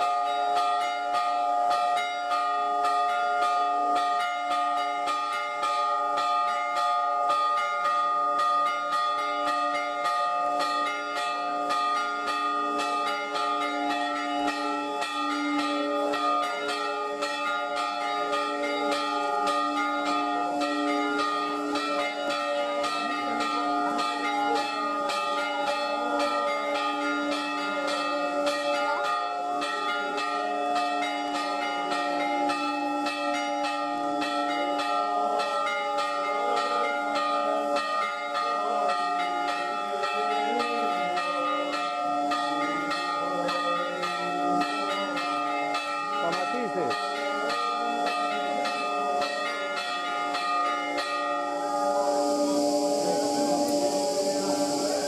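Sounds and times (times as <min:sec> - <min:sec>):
church bells pealing rapidly: 0:00.0 - 0:55.0.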